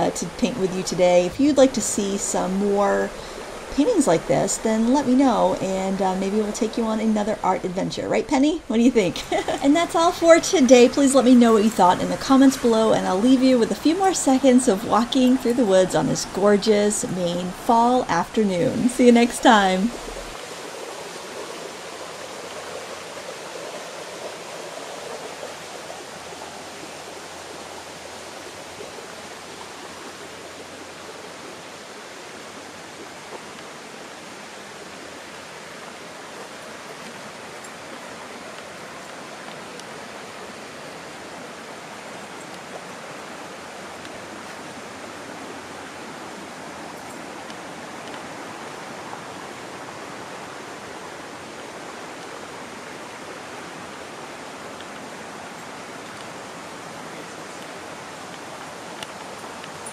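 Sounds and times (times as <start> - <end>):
stream rushing: 0.0 - 59.9.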